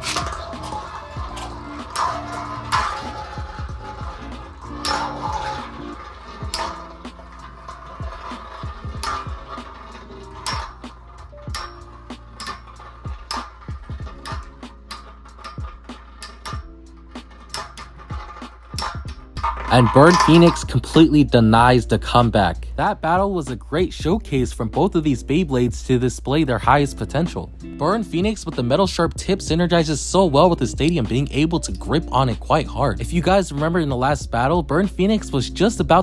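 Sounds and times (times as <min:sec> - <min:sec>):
metallic clicks and clacks: 0:00.0 - 0:22.6, 0:23.4 - 0:36.0
spinning tops clashing: 0:00.0 - 0:22.6
background music: 0:00.0 - 0:36.0.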